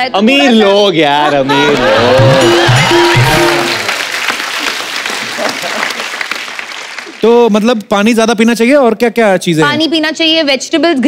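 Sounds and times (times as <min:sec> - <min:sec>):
audience applause: 0:01.4 - 0:07.4.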